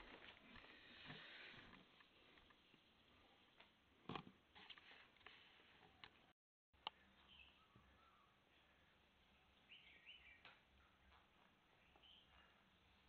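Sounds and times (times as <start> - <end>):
soft rustle or sniff: 4.6 - 5.9.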